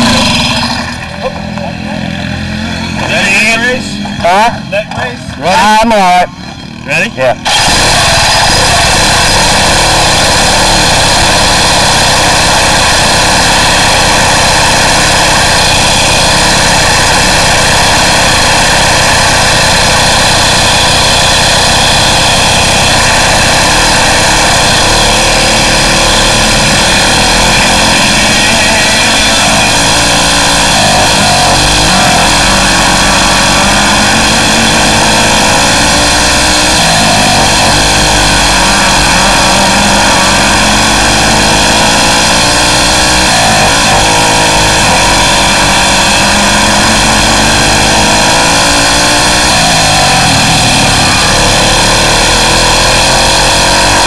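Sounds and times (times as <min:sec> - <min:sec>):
kart engine revving: 0:00.0 - 0:54.0.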